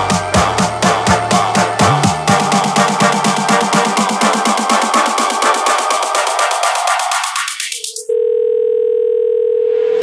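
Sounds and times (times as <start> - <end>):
electro house music: 0.0 - 8.1
telephone dial tone: 8.0 - 10.0.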